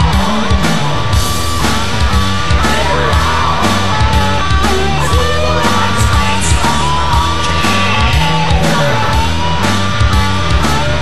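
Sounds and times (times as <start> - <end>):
hard rock song: 0.0 - 11.0.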